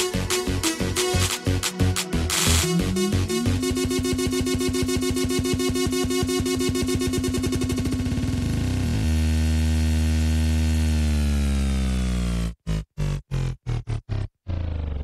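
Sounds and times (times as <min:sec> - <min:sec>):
loud electronic dance music: 0:00.0 - 0:09.3.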